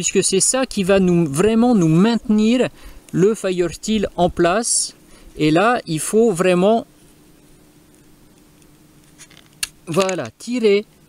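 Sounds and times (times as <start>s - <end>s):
faint steady hiss: 0.0s - 11.0s
thin low hum: 0.0s - 11.0s.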